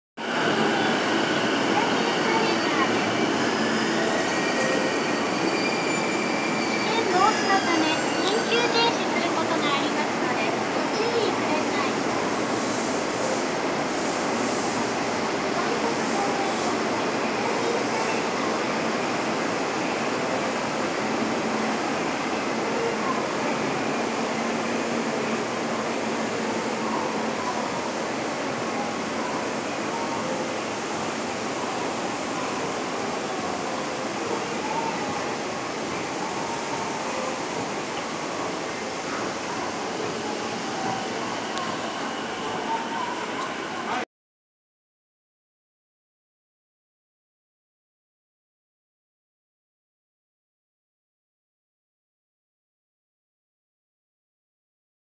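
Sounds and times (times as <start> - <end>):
high squealing tones: 3.0 - 8.6.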